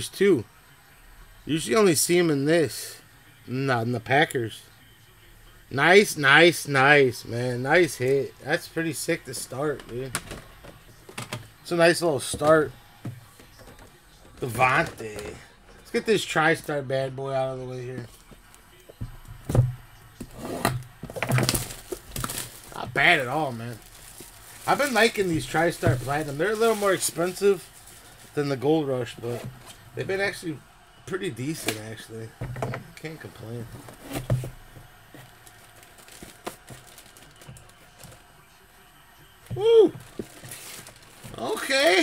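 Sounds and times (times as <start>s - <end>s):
cardboard box knocks and scrapes: 33.8s - 34.6s.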